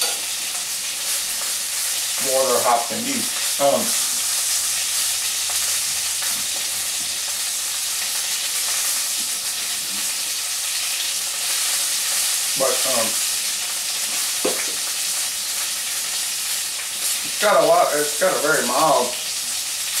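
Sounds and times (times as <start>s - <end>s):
sausage sizzling in a frying pan: 0.0s - 20.0s.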